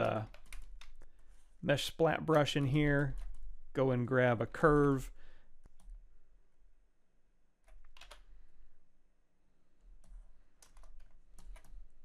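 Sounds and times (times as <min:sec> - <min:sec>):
computer keys clicking: 0:00.0 - 0:01.2, 0:07.6 - 0:08.3, 0:10.0 - 0:12.0.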